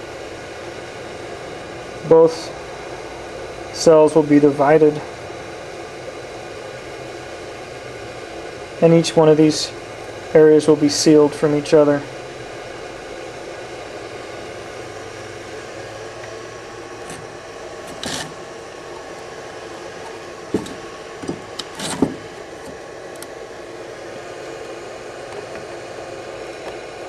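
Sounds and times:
steady background hum: 0.0s - 27.0s.

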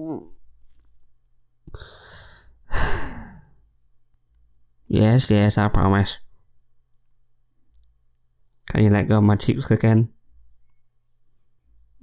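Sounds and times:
man sighing: 1.7s - 3.6s.

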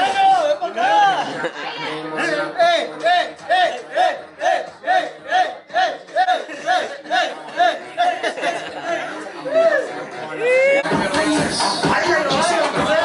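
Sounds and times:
men chanting in unison: 2.1s - 13.0s.

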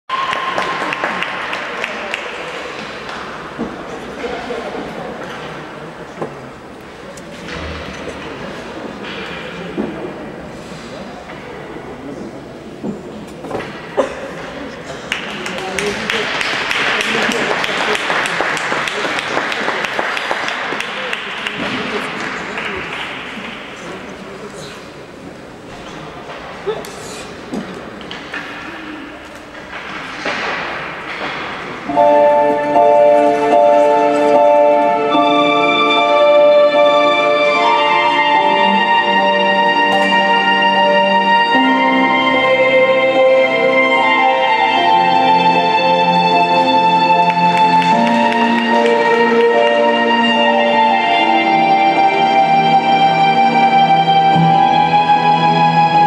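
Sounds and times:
indistinct talking: 0.1s - 56.0s.

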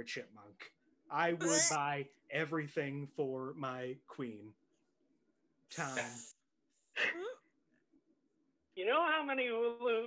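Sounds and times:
person speaking: 1.1s - 1.9s, 5.7s - 6.3s.

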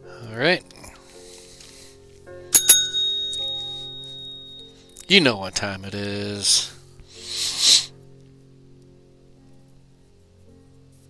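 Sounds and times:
soft background music: 0.0s - 11.0s
metallic clinks with ringing tone: 2.6s - 5.0s.

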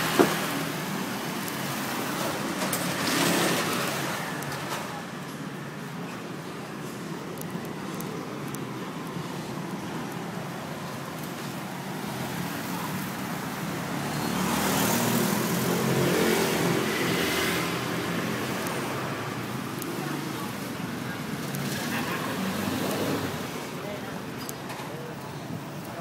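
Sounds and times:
street traffic: 0.0s - 26.0s
vehicle engine passing: 14.3s - 18.6s.

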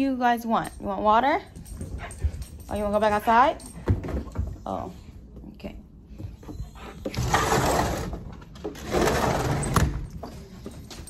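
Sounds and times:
sliding glass door rolling: 7.2s - 8.1s, 8.8s - 9.9s.

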